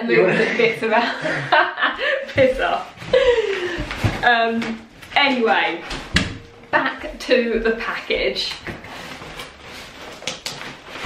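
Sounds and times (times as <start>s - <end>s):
cardboard crackles: 8.6s - 11.0s
cardboard scraping and rustling: 8.6s - 11.0s.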